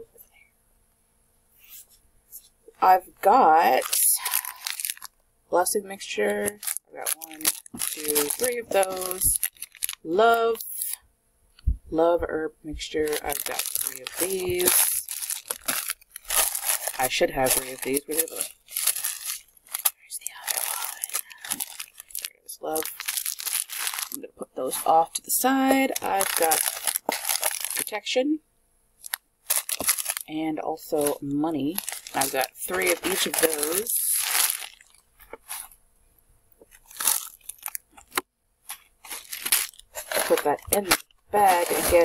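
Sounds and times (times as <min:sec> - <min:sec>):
person speaking: 0:02.7 - 0:04.9, 0:05.5 - 0:11.0, 0:11.8 - 0:19.2, 0:20.0 - 0:28.4, 0:29.8 - 0:35.7, 0:39.1 - 0:42.0
packing paper rustling: 0:03.3 - 0:11.0, 0:13.0 - 0:28.0, 0:29.0 - 0:30.3, 0:30.9 - 0:35.8, 0:36.6 - 0:42.0
plastic packets crinkling: 0:03.3 - 0:11.0, 0:13.0 - 0:28.0, 0:29.0 - 0:35.8, 0:36.6 - 0:42.0.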